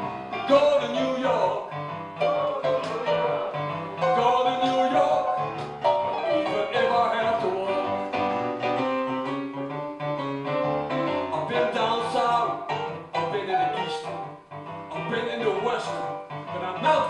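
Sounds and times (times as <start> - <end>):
man singing: 0.0 - 8.7, 11.1 - 17.0
stage piano: 0.0 - 17.0.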